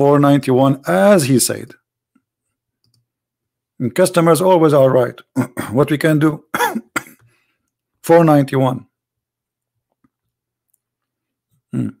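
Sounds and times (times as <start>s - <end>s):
man humming hmm: 11.7s - 12.0s.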